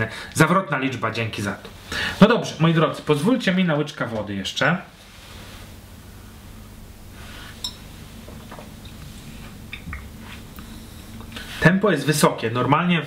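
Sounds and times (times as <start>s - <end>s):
steady low hum: 0.0s - 13.0s
man sipping and swallowing water: 7.4s - 11.6s.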